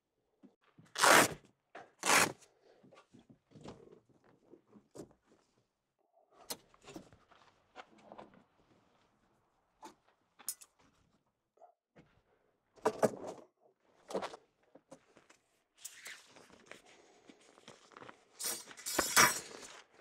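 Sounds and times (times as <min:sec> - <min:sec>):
tent zipper pulled closed: 0:01.0 - 0:01.4, 0:02.0 - 0:02.4.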